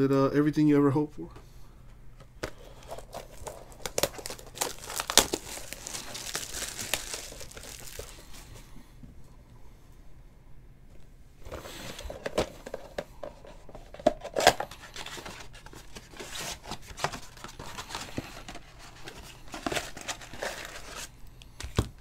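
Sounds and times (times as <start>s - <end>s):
plastic wrapping crinkling and tearing: 2.8s - 8.6s, 14.4s - 21.2s.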